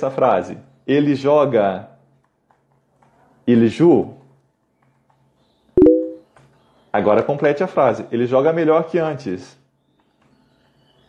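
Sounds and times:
electronic chime: 0:05.8 - 0:06.2.

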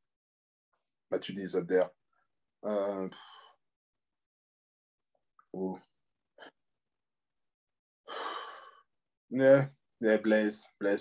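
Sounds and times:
faint breath: 0:03.1 - 0:03.6, 0:08.1 - 0:08.9.

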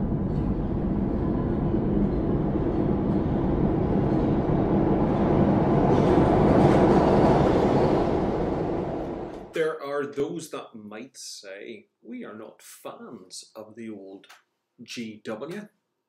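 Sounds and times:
rumbling drone: 0:00.0 - 0:09.6.

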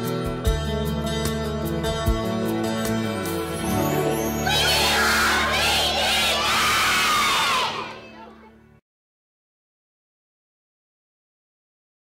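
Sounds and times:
children cheering and shouting: 0:03.7 - 0:08.6.

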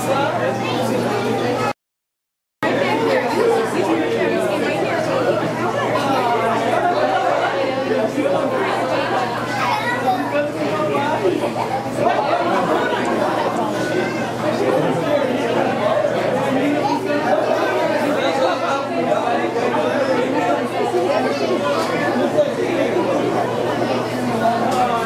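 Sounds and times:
crowd chatter: 0:00.0 - 0:01.8, 0:02.6 - 0:25.0.

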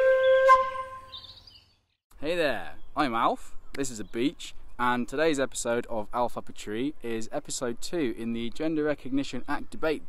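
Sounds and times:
flute-like wind instrument: 0:00.0 - 0:01.3.

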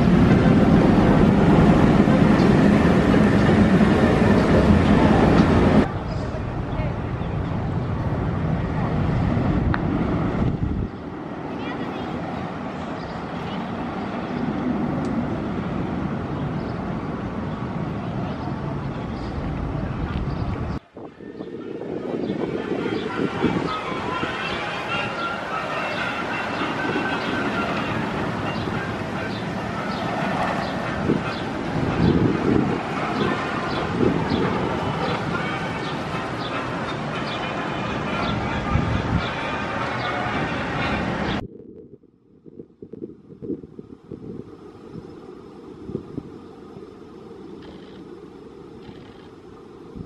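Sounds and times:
roller coaster rumble: 0:00.0 - 0:41.5.

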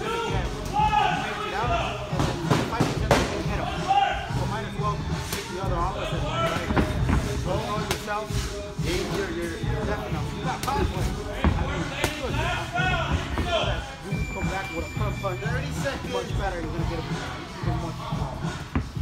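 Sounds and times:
background music with singing: 0:00.0 - 0:19.0.

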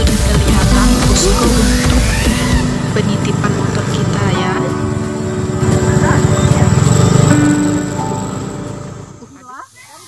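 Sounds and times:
voices: 0:00.0 - 0:02.0, 0:02.6 - 0:04.9, 0:05.6 - 0:10.0
small motorcycle engine running: 0:00.0 - 0:09.4
background music: 0:00.0 - 0:09.6.

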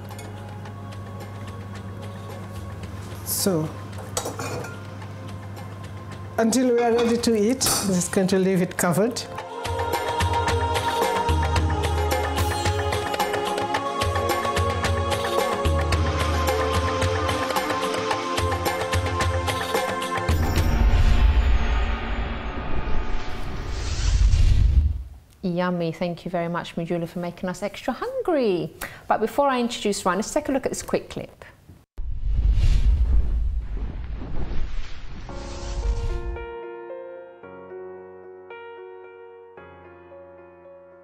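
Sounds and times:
music: 0:00.0 - 0:23.8, 0:35.3 - 0:41.0
metal cookware clinking: 0:04.2 - 0:04.9, 0:06.5 - 0:08.2
whooshing sweep: 0:32.0 - 0:36.4.

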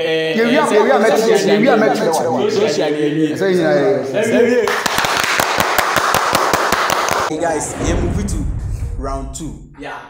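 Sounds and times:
rapid hand clapping: 0:04.6 - 0:07.3.

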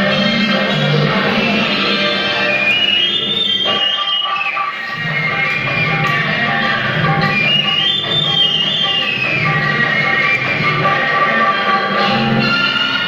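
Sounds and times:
instrumental film song music: 0:00.0 - 0:13.0.

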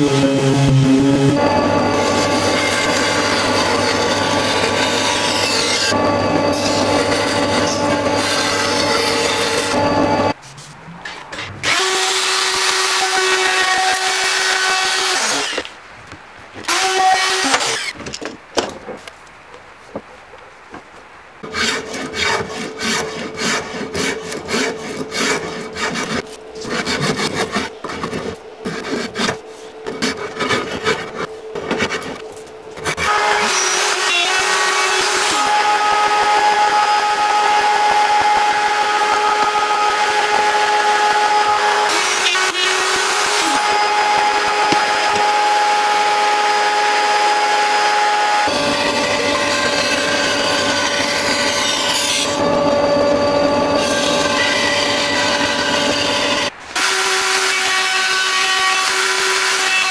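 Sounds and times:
power tool running: 0:00.0 - 0:10.4, 0:32.7 - 0:59.9.

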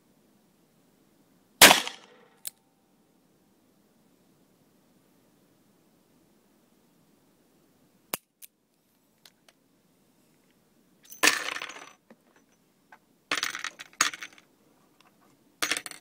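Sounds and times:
metallic clinking and rattling: 0:11.0 - 0:12.6, 0:13.3 - 0:14.5, 0:15.6 - 0:16.0.

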